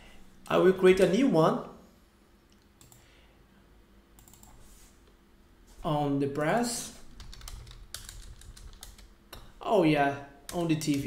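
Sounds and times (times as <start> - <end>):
typing on computer keyboard: 4.2 - 4.6, 7.2 - 9.5, 10.5 - 11.0.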